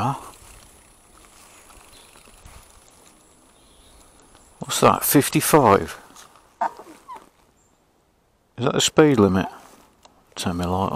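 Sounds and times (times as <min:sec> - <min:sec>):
e-bike rolling on tarmac: 0:00.0 - 0:07.7.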